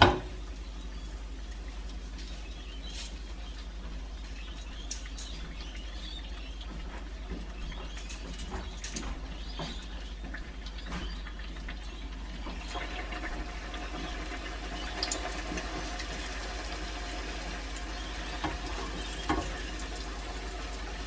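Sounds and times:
oil sizzling and bubbling: 0.0 - 21.0.

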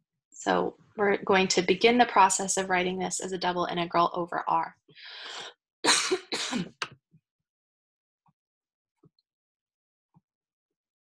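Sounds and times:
intake of breath: 4.9 - 5.5
person coughing: 5.9 - 6.8.

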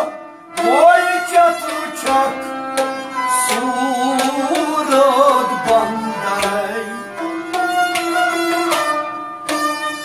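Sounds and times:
harmonium chords: 0.0 - 10.0
rabab: 0.0 - 10.0.

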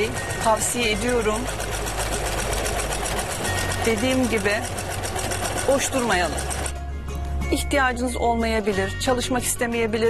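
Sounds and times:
electric sewing machine stitching: 0.0 - 6.8.

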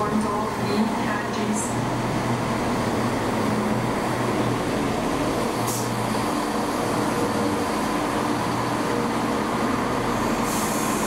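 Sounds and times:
diesel train engines humming: 0.0 - 11.0
air hiss: 10.4 - 11.0.

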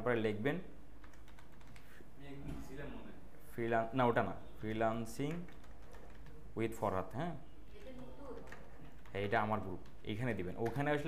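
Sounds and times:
keyboard typing: 0.9 - 2.0, 4.6 - 11.0.

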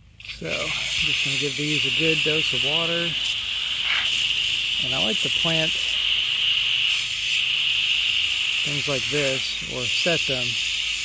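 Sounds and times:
hose nozzle spraying water: 0.2 - 11.0.

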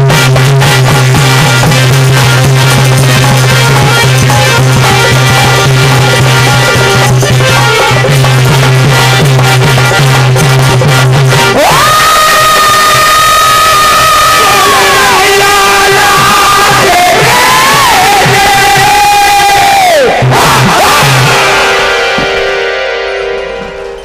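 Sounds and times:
dholak drumming: 0.0 - 19.4
man singing long high notes: 11.5 - 21.8.

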